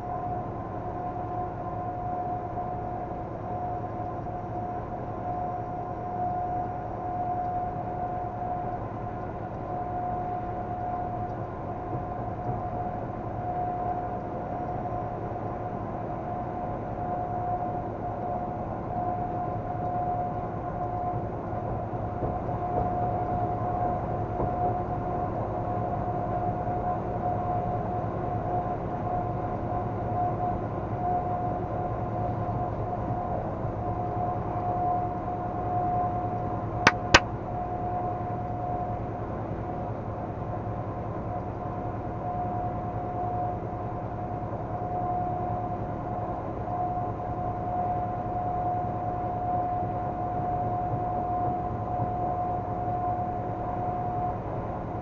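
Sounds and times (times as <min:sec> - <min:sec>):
constant high whine: 0:00.0 - 0:55.0.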